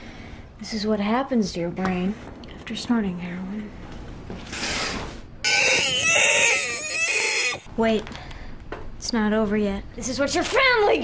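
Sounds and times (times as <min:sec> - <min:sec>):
man wailing high-pitched: 0:05.5 - 0:07.6.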